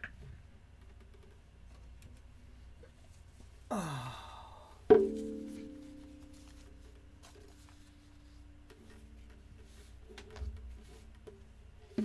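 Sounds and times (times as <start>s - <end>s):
person sighing: 3.7s - 4.9s
guitar chord ringing: 4.9s - 6.9s.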